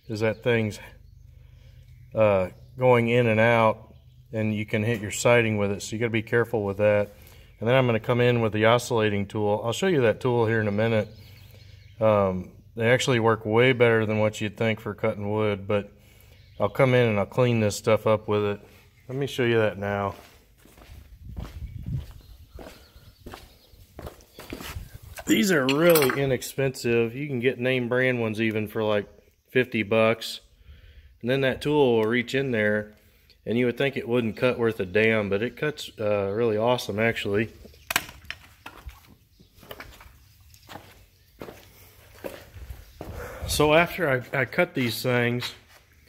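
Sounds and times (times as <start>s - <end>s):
footsteps on concrete: 19.1s - 26.1s, 38.7s - 43.4s, 45.4s - 46.0s
footsteps on gravel: 19.8s - 26.0s, 38.8s - 43.3s.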